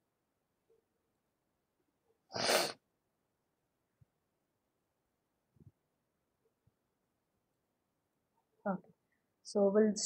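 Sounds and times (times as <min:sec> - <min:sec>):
person sneezing: 0:02.3 - 0:02.8.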